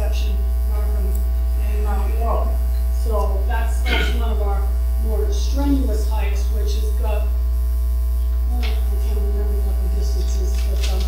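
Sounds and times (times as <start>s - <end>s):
electrical mains hum: 0.0s - 11.0s
faint voice: 3.8s - 4.4s.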